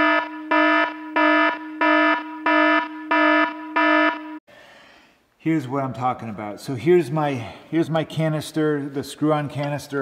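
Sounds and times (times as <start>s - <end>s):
electronic alarm beeping: 0.0s - 4.4s.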